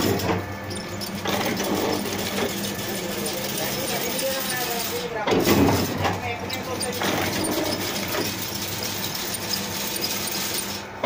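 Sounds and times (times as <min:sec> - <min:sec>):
dense mechanical clatter: 0:00.0 - 0:11.0
fence machine humming: 0:00.0 - 0:11.0.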